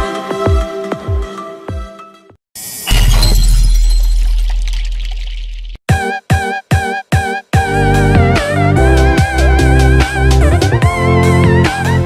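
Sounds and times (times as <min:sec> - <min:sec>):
glass shattering: 0:02.6 - 0:05.8.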